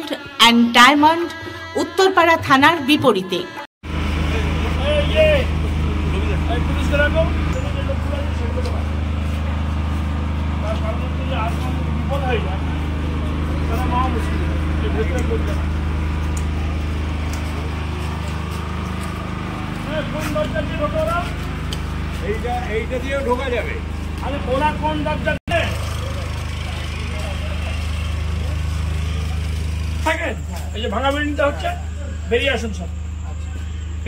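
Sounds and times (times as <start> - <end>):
people talking: 0.0 - 3.6, 4.2 - 21.5, 22.1 - 34.0
tractor diesel engine idling: 3.8 - 34.0.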